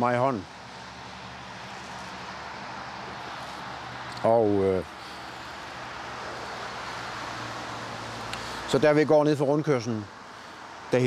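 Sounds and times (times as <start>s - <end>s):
vehicle rumble: 0.4s - 11.0s.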